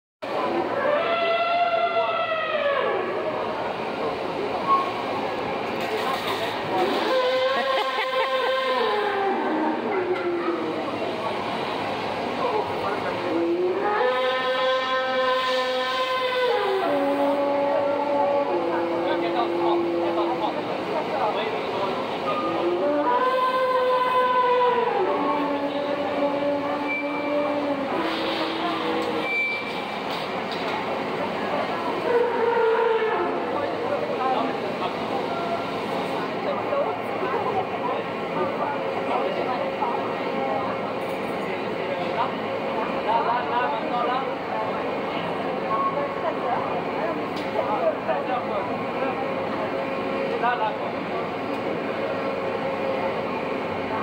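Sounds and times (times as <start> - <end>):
horn-like trumpet call: 6.8 - 9.4, 13.4 - 19.0, 22.6 - 29.3.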